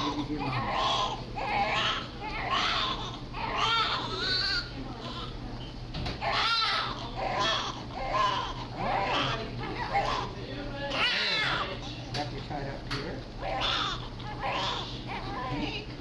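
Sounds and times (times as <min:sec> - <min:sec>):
newborn baby crying: 0:00.0 - 0:05.4, 0:06.2 - 0:11.8, 0:13.4 - 0:15.8
low steady hum: 0:00.0 - 0:16.0.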